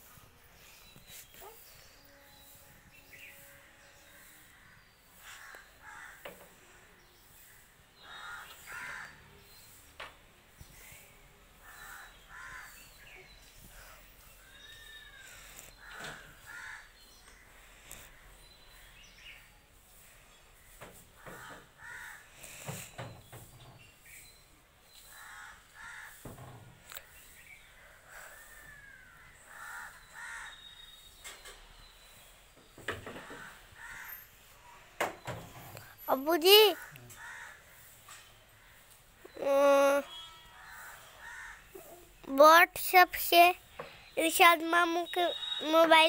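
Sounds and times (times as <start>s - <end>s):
crows cawing: 5.3s - 6.4s, 8.0s - 9.2s, 11.6s - 12.8s, 15.8s - 17.0s, 21.2s - 22.3s, 25.2s - 26.2s, 28.3s - 30.6s, 33.2s - 34.2s, 36.8s - 38.0s, 40.5s - 41.8s.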